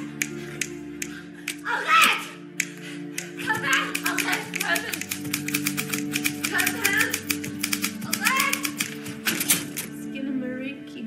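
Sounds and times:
background music: 0.0 - 11.0
typewriter keys clacking: 3.4 - 9.9.

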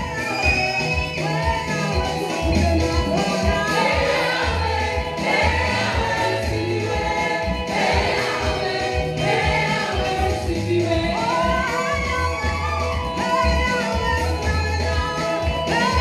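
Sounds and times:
instrumental backing with beat: 0.0 - 16.0
woman singing into microphone: 0.0 - 16.0
backing singers: 3.6 - 11.8.

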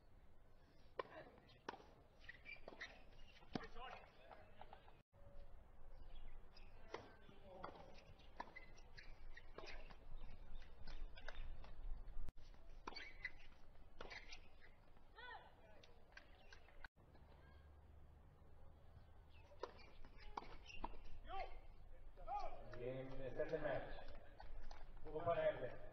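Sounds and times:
tennis ball struck by rackets: 0.8 - 4.4, 19.5 - 21.1
ball bouncing on hard court: 1.0 - 4.8.

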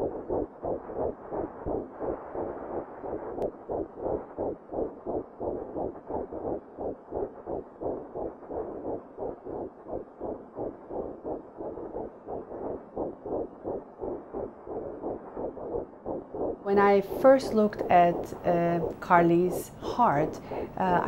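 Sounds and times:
fetal heartbeat on doppler: 0.0 - 21.0.

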